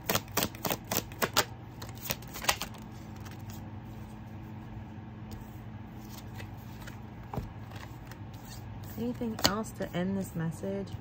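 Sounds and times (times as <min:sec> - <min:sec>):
cards shuffling: 0:00.0 - 0:03.6, 0:06.0 - 0:09.7.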